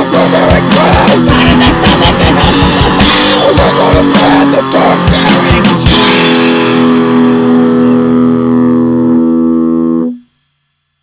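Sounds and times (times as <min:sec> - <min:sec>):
distorted electric guitar chord ringing: 0:00.0 - 0:10.5.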